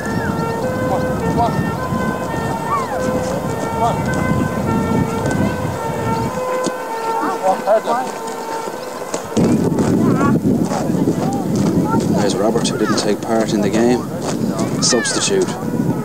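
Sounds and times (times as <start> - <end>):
children shouting: 0.0 - 16.0
wind buffeting microphone: 0.0 - 16.0.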